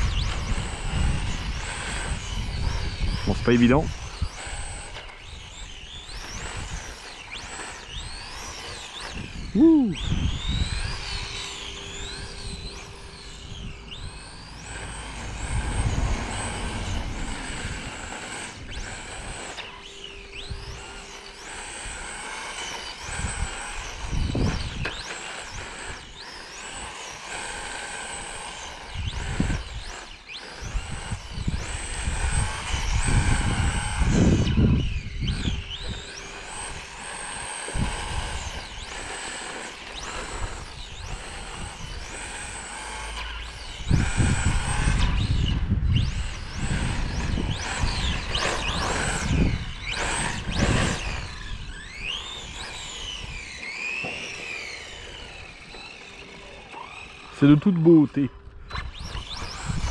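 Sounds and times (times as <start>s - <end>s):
electric motor whining: 0.0s - 59.9s.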